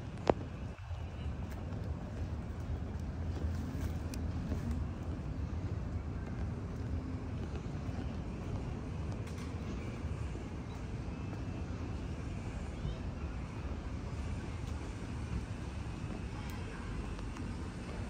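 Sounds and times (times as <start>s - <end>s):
distant road traffic: 0.0s - 18.0s.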